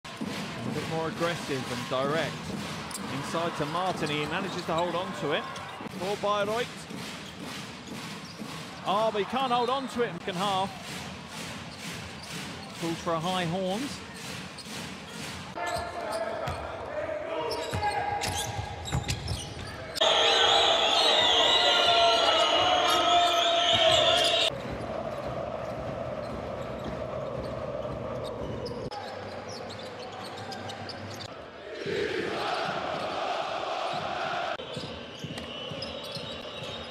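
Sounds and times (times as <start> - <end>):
sports commentary: 0.6 - 7.2, 8.5 - 11.2, 12.4 - 14.5
arena voices: 31.3 - 34.6.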